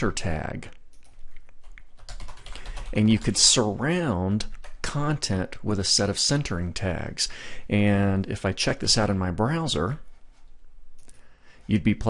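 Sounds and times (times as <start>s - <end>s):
computer keyboard typing: 0.9s - 3.4s, 4.4s - 4.8s.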